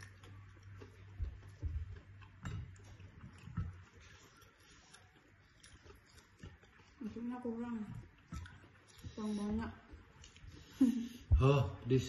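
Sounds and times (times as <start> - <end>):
mouth eating noises: 0.0 - 10.8.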